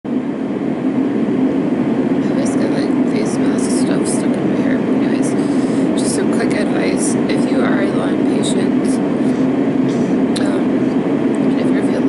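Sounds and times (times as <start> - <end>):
low-pitched drone: 0.1 - 12.0.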